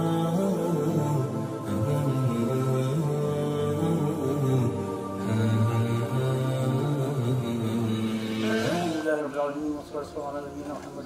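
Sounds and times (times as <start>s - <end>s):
man chanting melodically: 0.0s - 11.0s.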